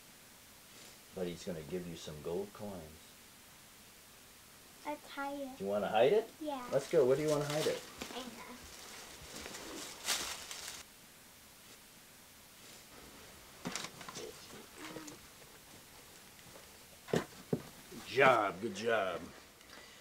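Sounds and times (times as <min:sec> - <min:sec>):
cloth and toys rustling: 0:06.4 - 0:10.9, 0:12.5 - 0:19.8.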